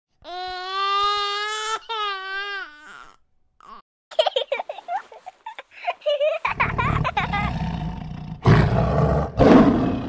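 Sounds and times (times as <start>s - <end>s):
baby crying: 0.2s - 3.8s.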